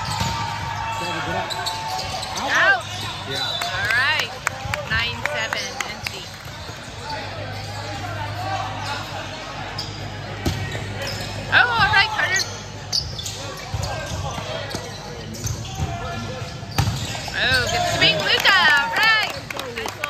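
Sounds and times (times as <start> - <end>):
players shouting: 0.0 - 5.8, 6.9 - 19.5.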